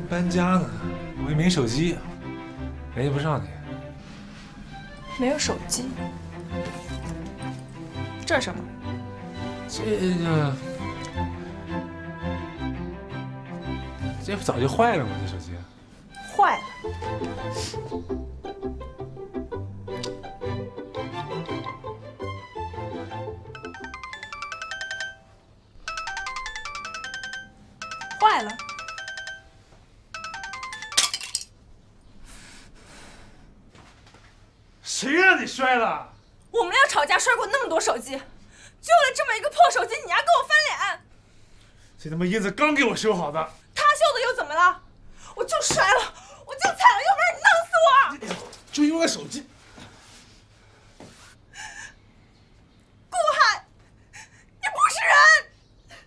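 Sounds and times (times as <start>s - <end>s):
mobile phone ringtone: 23.5s - 31.3s
faint breath: 32.1s - 33.7s.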